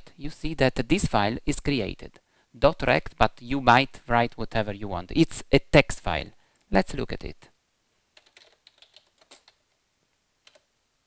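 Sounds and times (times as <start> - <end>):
faint keyboard keystrokes: 8.2 - 9.7, 10.4 - 10.7.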